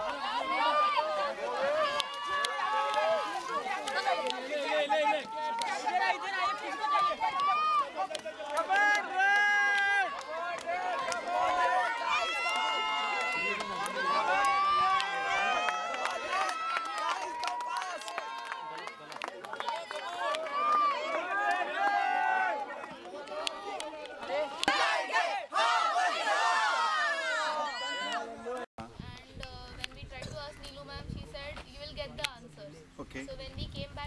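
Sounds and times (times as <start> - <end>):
young people talking and calling out: 0.0 - 34.0.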